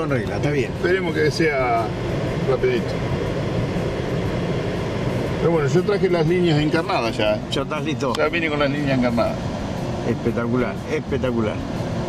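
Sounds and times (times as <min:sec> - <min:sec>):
car engine idling hum: 0:00.0 - 0:12.0.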